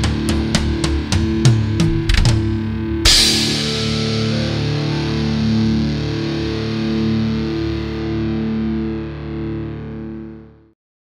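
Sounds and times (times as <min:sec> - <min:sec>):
distorted electric guitar chord ringing: 0:00.0 - 0:10.7.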